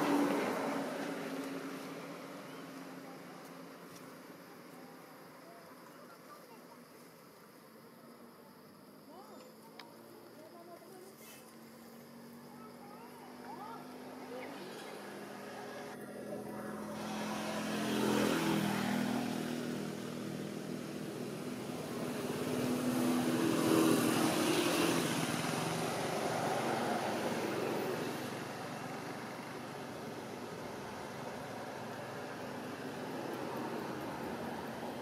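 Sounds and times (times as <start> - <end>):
steady background hiss: 0.0 - 35.0
vehicle engines passing by: 0.0 - 35.0.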